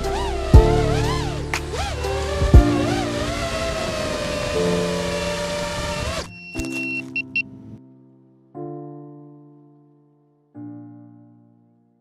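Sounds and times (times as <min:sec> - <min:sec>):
drone motors whining: 0:00.0 - 0:07.0
background music: 0:00.0 - 0:10.2
sustained piano chords: 0:00.0 - 0:12.0.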